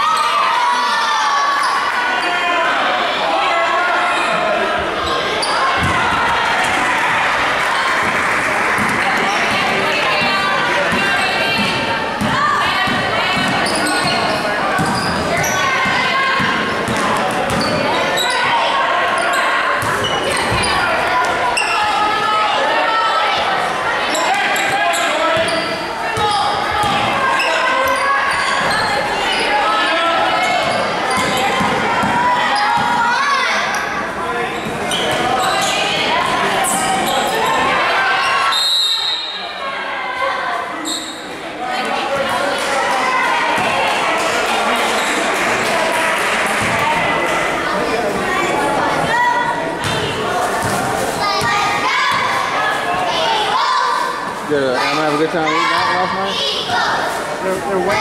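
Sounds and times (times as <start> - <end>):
echoing voices: 0.0 - 58.0
referee's whistle: 38.4 - 39.6.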